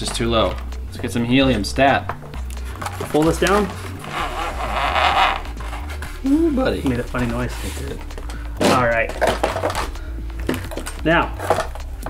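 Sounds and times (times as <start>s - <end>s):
zip tie being pulled tight: 4.0s - 5.9s.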